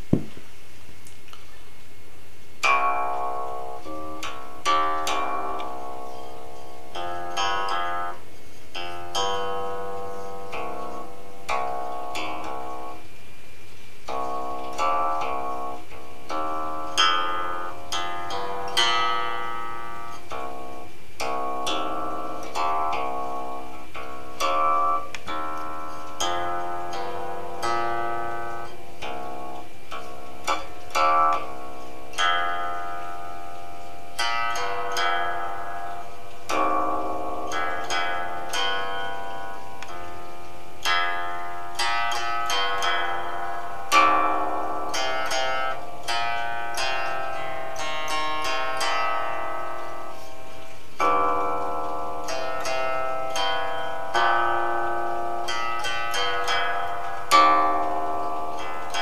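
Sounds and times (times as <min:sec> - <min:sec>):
plucked zither: 0:02.6 - 0:59.0.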